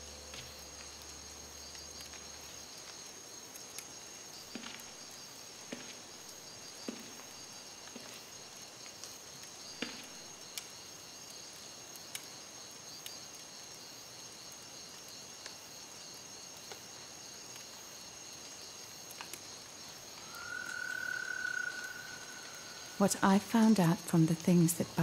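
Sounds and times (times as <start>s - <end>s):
faint ticks: 0.0s - 6.0s, 6.8s - 15.6s, 19.0s - 22.6s
insects chirping: 0.0s - 25.0s.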